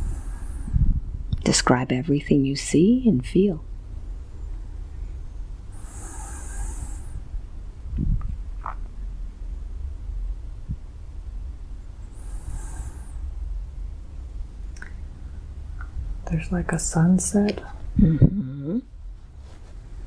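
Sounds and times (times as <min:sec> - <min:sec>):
person breathing deeply: 0:00.0 - 0:00.9, 0:05.7 - 0:07.3, 0:12.1 - 0:13.3
low room noise rumble: 0:00.0 - 0:20.0.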